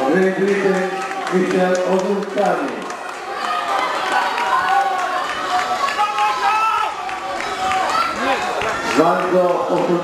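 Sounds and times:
spectators shouting and cheering: 0:00.0 - 0:10.0.

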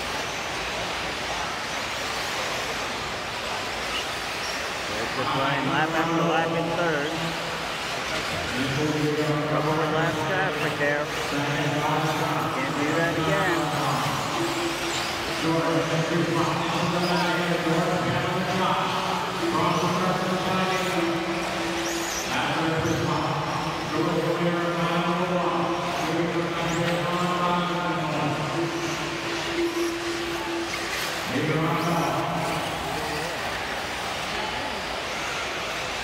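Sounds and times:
background noise: 0:00.0 - 0:36.0
announcer talking over pa system: 0:05.0 - 0:07.5, 0:08.5 - 0:33.2.

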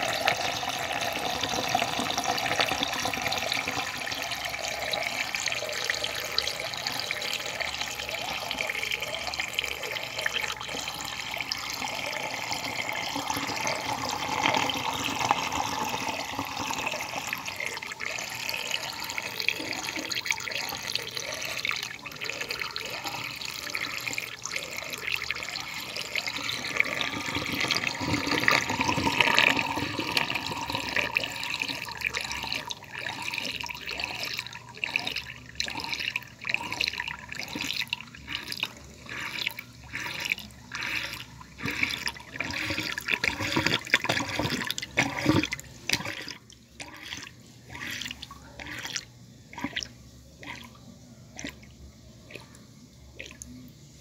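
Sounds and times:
water gurgles and splashes: 0:00.0 - 0:53.7
water swirling and draining: 0:00.0 - 0:53.7.

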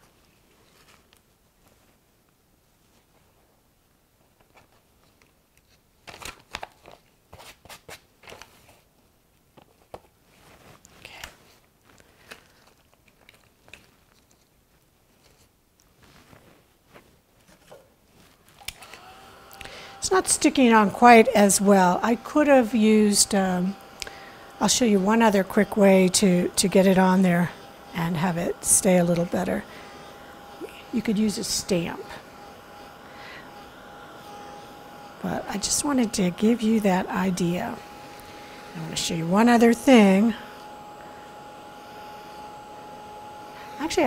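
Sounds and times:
gloved hands handling craft items: 0:00.0 - 0:03.6, 0:04.2 - 0:19.0
heat gun blower hiss: 0:18.9 - 0:44.0.

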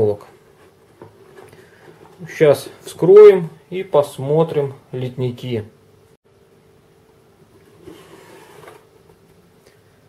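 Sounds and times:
cardboard box rustling and scraping: 0:07.6 - 0:08.9.

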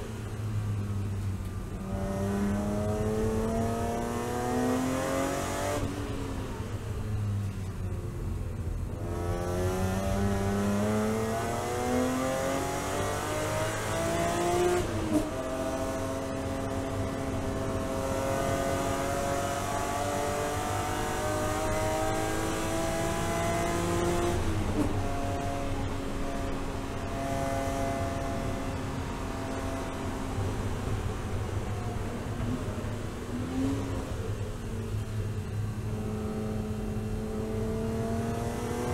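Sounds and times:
car engine accelerating: 0:00.0 - 0:38.9.

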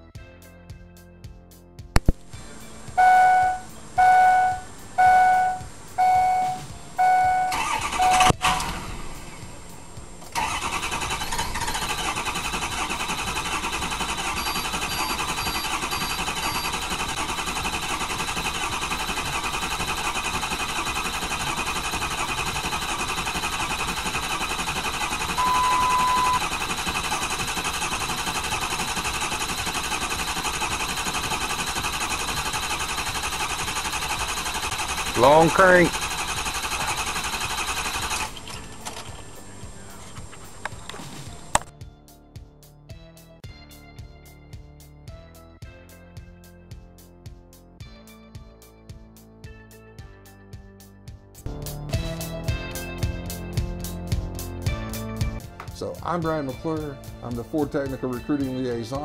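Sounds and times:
warning chimes: 0:03.0 - 0:08.3
starter cranking engine: 0:07.5 - 0:09.1, 0:10.2 - 0:41.7.

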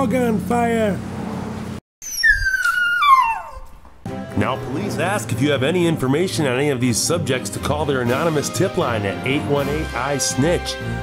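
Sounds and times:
dog whining: 0:02.0 - 0:03.9.

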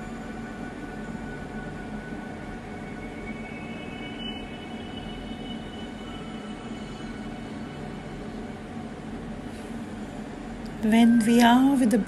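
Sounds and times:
ambient music drone: 0:00.0 - 0:12.0.

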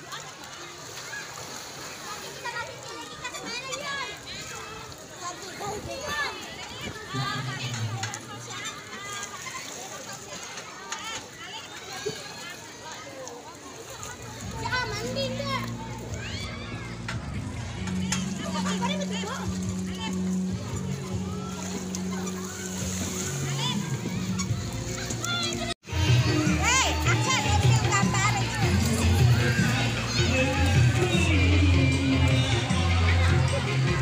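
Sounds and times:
children shouting in a pool: 0:00.0 - 0:34.0.

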